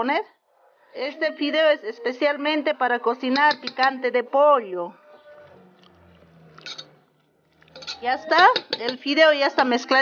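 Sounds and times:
spoon scraping pot: 3.2 - 4.0, 6.2 - 10.0
spoon stirring wet pasta: 3.2 - 4.0, 6.6 - 10.0.

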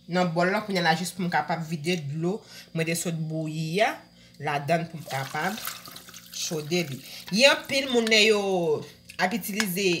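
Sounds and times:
person talking: 0.1 - 5.6, 6.4 - 10.0.

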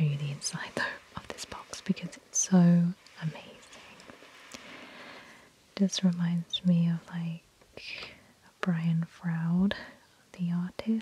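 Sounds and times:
soft whispering: 0.0 - 4.5, 5.8 - 11.0.

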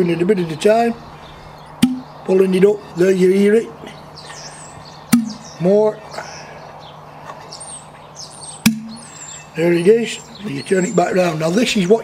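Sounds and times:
birds chirping faintly: 0.0 - 12.0
sharp pop: 1.8 - 2.0, 5.1 - 5.4, 8.6 - 9.0.

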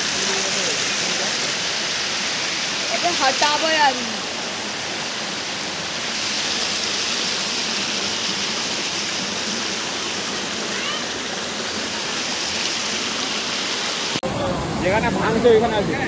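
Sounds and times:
floodwater rushing: 0.0 - 16.0.

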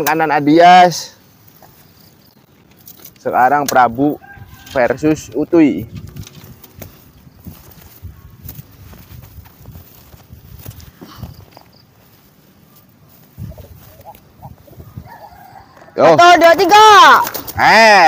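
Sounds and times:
chicken clucking: 13.4 - 16.0.

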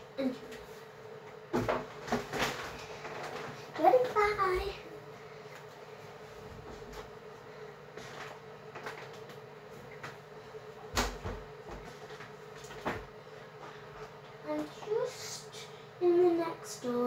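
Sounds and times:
steady hum: 0.0 - 17.0.

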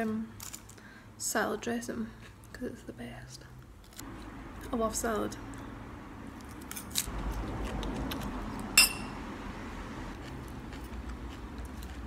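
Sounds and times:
muffled chewing: 10.1 - 12.0.

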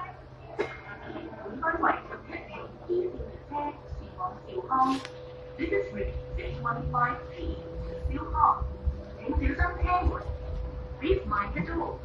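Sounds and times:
light rail car humming: 0.0 - 12.0.

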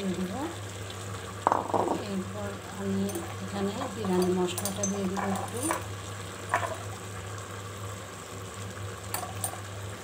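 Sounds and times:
rice simmering and bubbling in pot: 0.0 - 10.0.

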